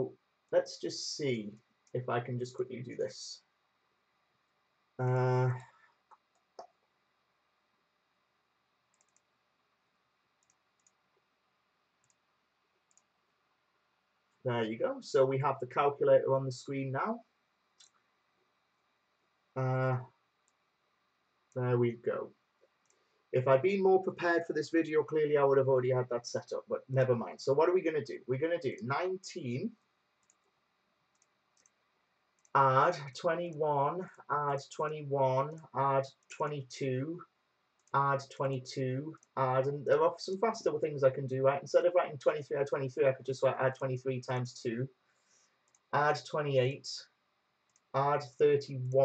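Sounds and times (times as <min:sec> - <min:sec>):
faint computer clicks: 0:08.9 - 0:09.3, 0:12.8 - 0:13.2, 0:29.8 - 0:32.6, 0:45.1 - 0:46.3, 0:47.6 - 0:48.4
faint computer mouse clicks: 0:08.9 - 0:09.3, 0:10.4 - 0:11.0, 0:12.0 - 0:12.2, 0:12.9 - 0:13.1, 0:22.6 - 0:23.1, 0:30.2 - 0:30.5, 0:31.1 - 0:31.8, 0:45.2 - 0:45.9, 0:47.6 - 0:47.9.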